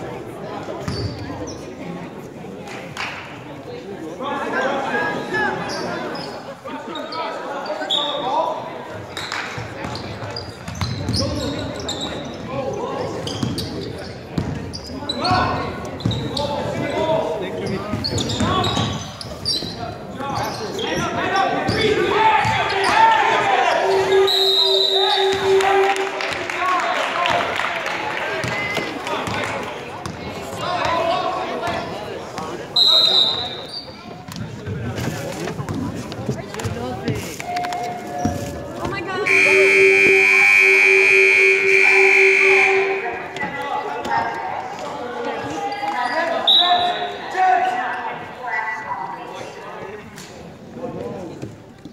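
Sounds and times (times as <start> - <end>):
sneakers squeaking: 0.8 - 1.8, 5.6 - 8.2, 9.0 - 23.1, 32.8 - 39.4, 45.4 - 47.2
people calling out: 21.8 - 26.3, 39.2 - 44.3
scoreboard buzzer blast: 39.3 - 43.0.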